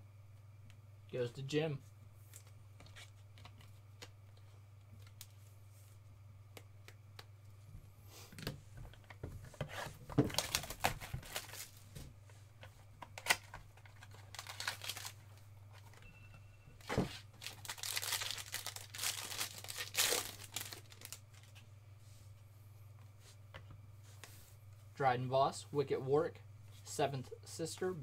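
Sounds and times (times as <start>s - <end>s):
foil wrapper tearing and crinkling: 10.3s - 11.8s, 13.3s - 15.2s, 17.4s - 21.5s.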